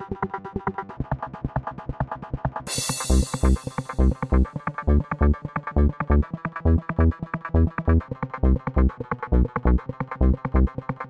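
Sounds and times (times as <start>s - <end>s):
kick drum: 3.0s - 4.5s.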